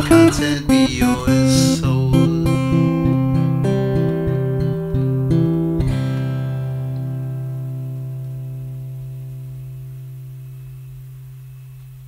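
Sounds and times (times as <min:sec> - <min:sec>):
acoustic guitar chord ringing: 0:00.0 - 0:11.8.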